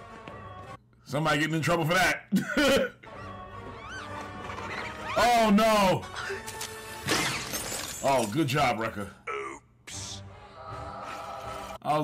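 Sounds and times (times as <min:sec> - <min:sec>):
cartoon soundtrack music: 0:01.9 - 0:07.1.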